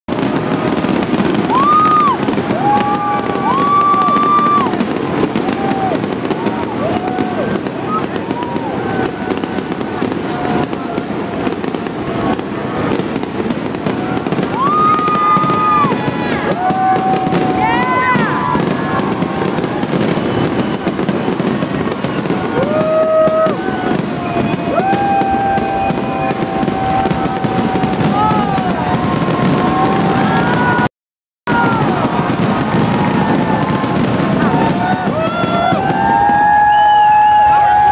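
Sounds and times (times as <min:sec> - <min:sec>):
crowd cheering: 0:00.1 - 0:30.9, 0:31.5 - 0:37.9
fireworks bangs and crackling: 0:00.1 - 0:30.9, 0:31.5 - 0:37.9.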